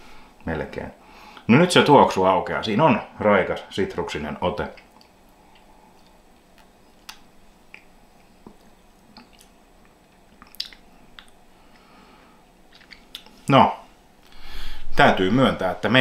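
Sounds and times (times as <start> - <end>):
soft mouth clicks and lip smacks: 4.7 - 11.8, 12.7 - 13.4.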